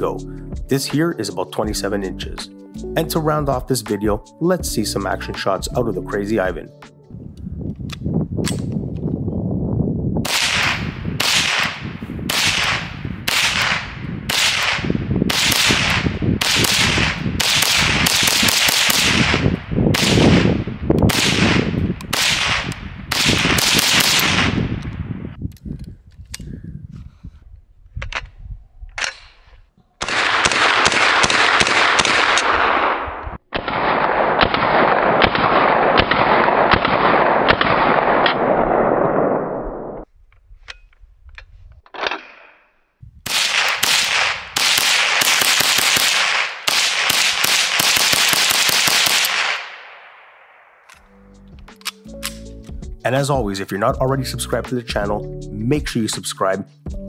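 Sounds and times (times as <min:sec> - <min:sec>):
rifle rapid shots: 0:10.3 - 0:24.6, 0:30.0 - 0:39.7, 0:43.3 - 0:50.3.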